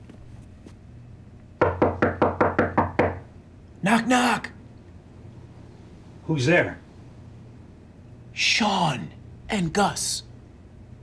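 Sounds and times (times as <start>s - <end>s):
knuckles rapping on a door: 1.6s - 3.3s.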